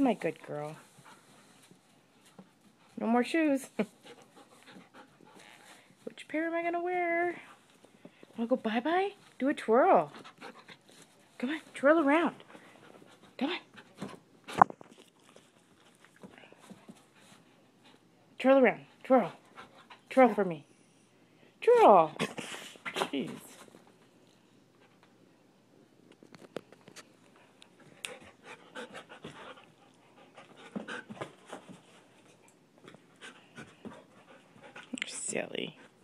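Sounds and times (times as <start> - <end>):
dog panting: 3.7 - 5.9, 10.0 - 11.1, 12.3 - 14.2, 19.2 - 20.4, 27.4 - 36.0.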